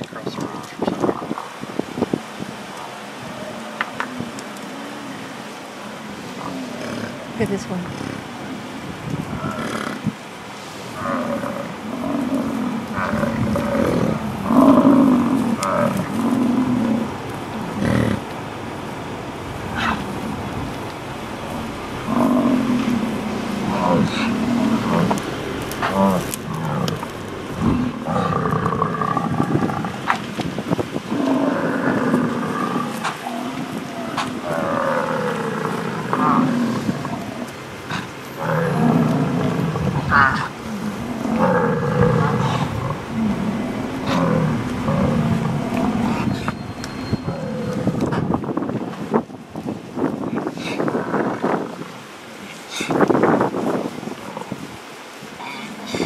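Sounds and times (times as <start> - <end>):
bison grunting: 10.9 - 18.3, 21.6 - 30.3, 31.1 - 48.6, 55.4 - 56.0.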